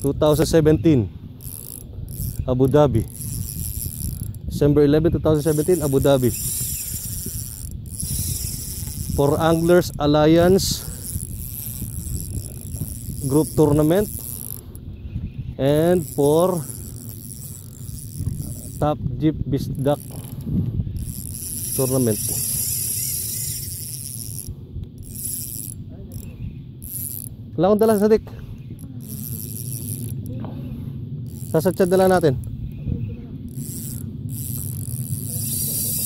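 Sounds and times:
fishing reel ticking: 0.0s - 15.0s, 15.6s - 19.0s, 19.6s - 30.4s, 31.2s - 32.8s, 33.5s - 36.0s.

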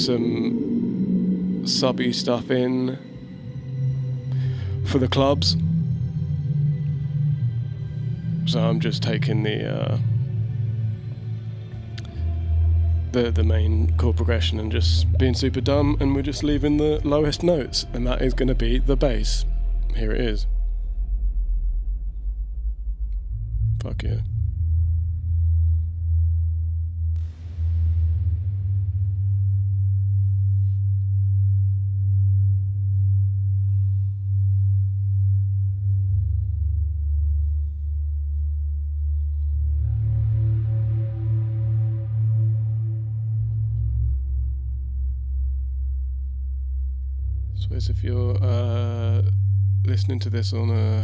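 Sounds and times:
deep sub-bass line: 0.0s - 51.0s
soft sustained synth pads: 0.0s - 51.0s.

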